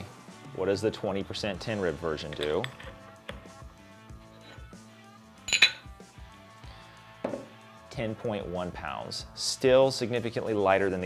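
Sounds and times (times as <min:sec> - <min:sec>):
soft background music: 0:00.0 - 0:11.0
metal parts clinking: 0:05.5 - 0:05.8.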